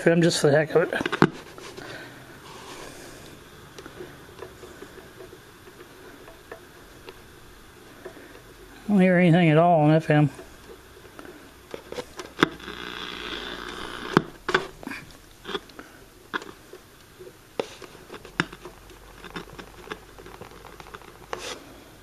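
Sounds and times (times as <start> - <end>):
radio tuning knob clicks and scrapes: 11.7 - 14.8
radio static: 11.9 - 14.7.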